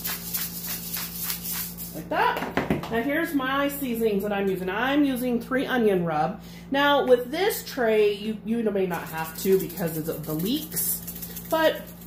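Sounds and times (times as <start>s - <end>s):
pepper grinder crunching: 0.0s - 2.0s, 8.9s - 12.0s
steady low hum: 0.0s - 12.0s.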